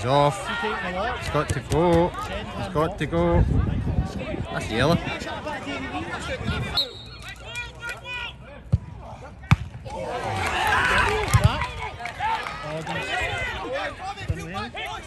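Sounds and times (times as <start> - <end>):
crowd chatter: 0.0 - 15.0
spectators shouting and cheering: 0.0 - 15.0.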